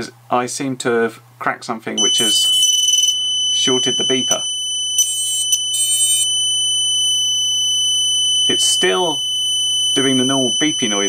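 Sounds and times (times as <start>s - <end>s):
continuous high-pitched beeper tone: 2.0s - 11.0s
short beeping bursts: 2.0s - 11.0s.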